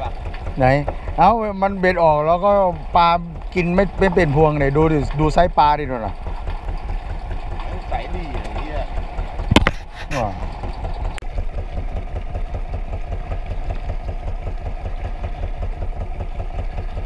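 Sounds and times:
boat engine chugging: 0.0 - 17.0
sharp knocks: 3.2 - 11.7.

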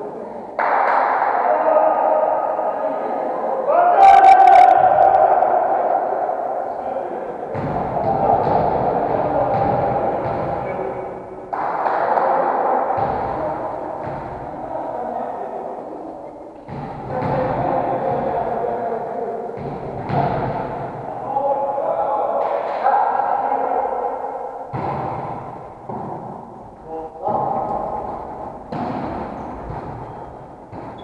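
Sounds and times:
indistinct voices in a hall: 0.0 - 31.0.

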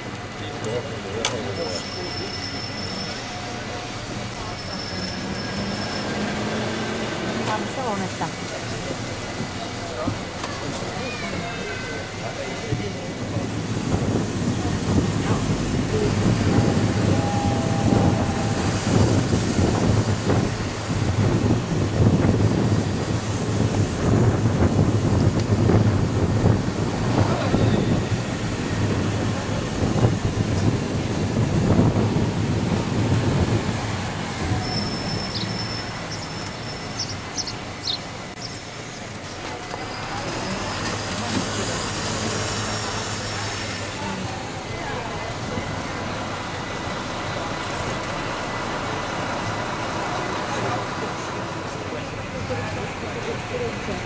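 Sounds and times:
bus engine drone: 0.0 - 54.0
road and traffic noise: 0.0 - 54.0
short high squeaks: 1.6 - 3.4.

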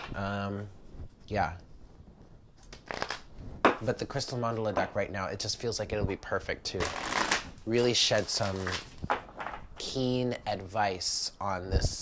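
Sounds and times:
cards being shuffled: 2.6 - 3.8, 6.8 - 9.6.

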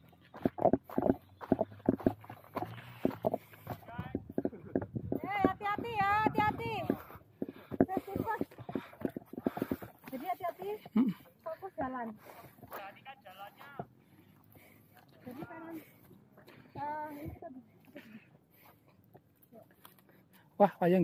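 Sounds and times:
footsteps crunching on rocky path: 0.0 - 17.4.

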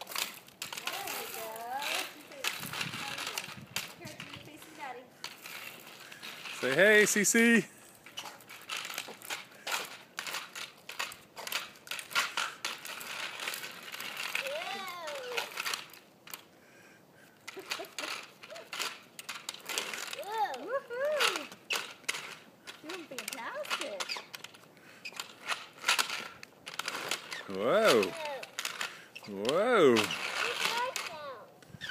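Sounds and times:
toy roller skates clattering on pavement: 0.0 - 16.6, 17.2 - 31.9
child's high voice sounds: 0.8 - 3.5, 14.4 - 15.6, 20.1 - 21.6, 27.8 - 28.6, 30.4 - 31.6.

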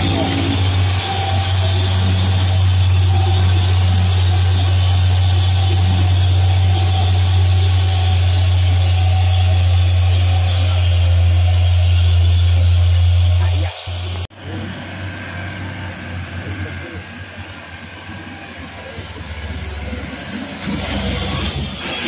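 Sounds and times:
diesel truck engine drone: 0.0 - 22.0
road noise: 0.0 - 22.0.

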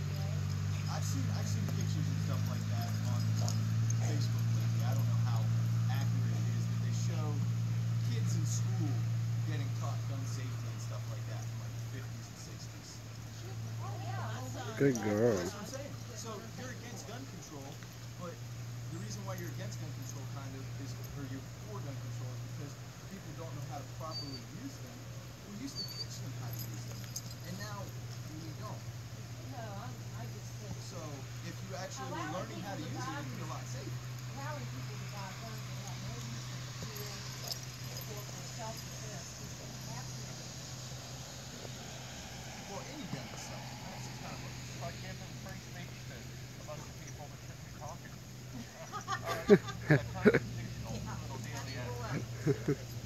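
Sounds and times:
distant voices: 0.0 - 53.0
steady low hum: 0.0 - 53.0
dog whimpering: 25.6 - 26.3.

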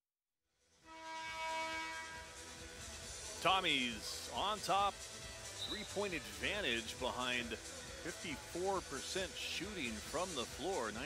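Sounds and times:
held horn tone: 0.8 - 2.7.

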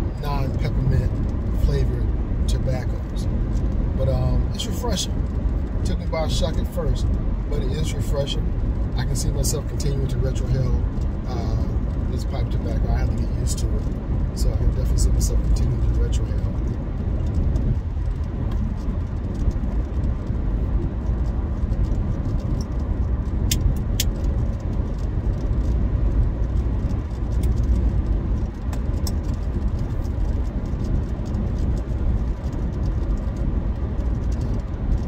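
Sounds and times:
car road and engine rumble: 0.0 - 35.0.

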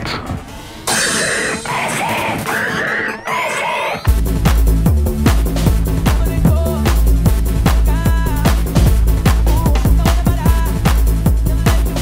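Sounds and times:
chopped electronic samples: 0.0 - 12.0.

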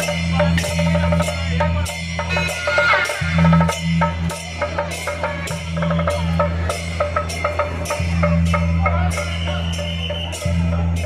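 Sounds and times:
drum strikes: 0.0 - 11.0
shawms playing reedy melody: 0.0 - 11.0.

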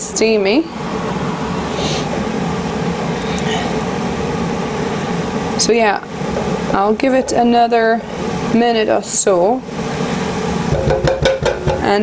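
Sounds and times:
extractor fan humming: 0.0 - 12.0.

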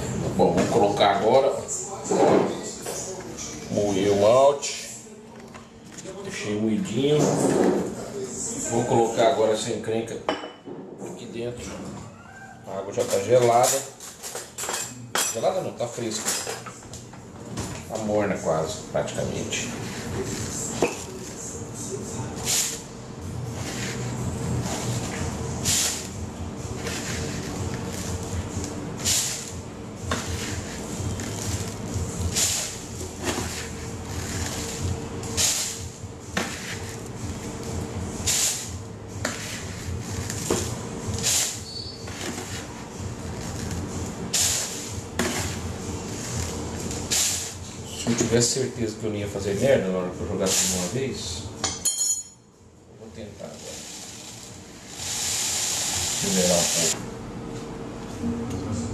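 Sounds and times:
low steady hum: 18.4 - 50.4, 56.9 - 58.9.

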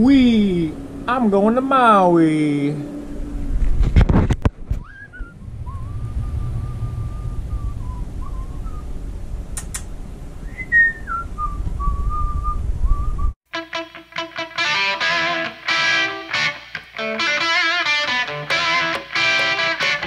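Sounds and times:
person whistling long notes: 4.8 - 8.9, 10.5 - 13.4
click: 9.6 - 9.9.

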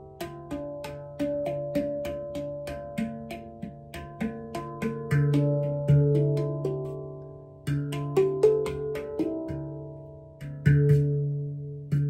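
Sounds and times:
handpan notes ringing: 0.0 - 12.0.

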